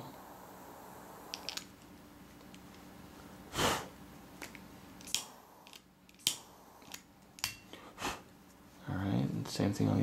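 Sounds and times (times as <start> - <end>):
lighter flame hiss: 0.0 - 2.6, 4.5 - 7.6
lighter clicks: 5.0 - 7.6.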